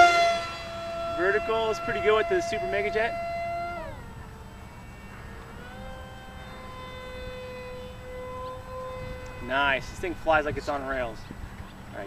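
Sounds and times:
model plane electric motor whining: 0.0 - 12.0.

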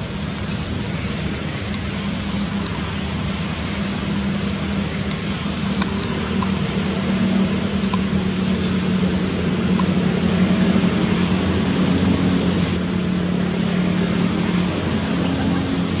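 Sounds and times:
continuous low hum: 0.0 - 16.0.

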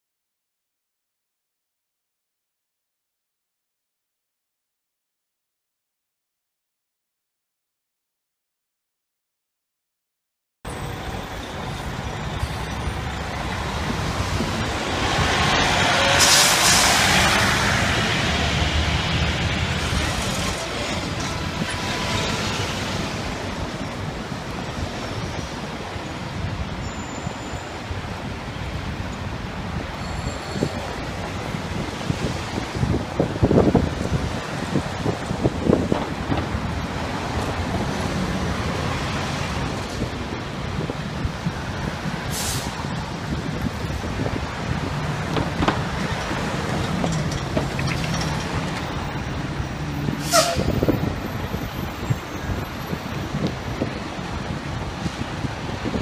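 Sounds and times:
city street traffic: 10.6 - 56.0
air brake hiss: 42.3 - 42.8.

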